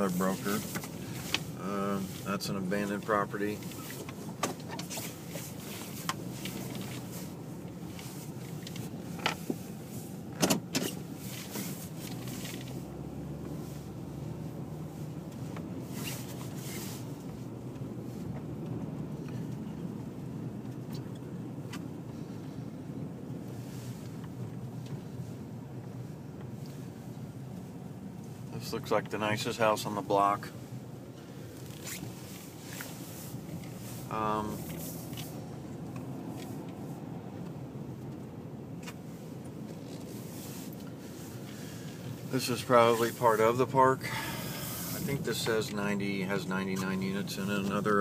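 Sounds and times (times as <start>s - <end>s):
car cabin hum: 0.0s - 48.0s
swishing rustles: 10.8s - 18.3s, 31.4s - 37.0s, 39.0s - 42.3s.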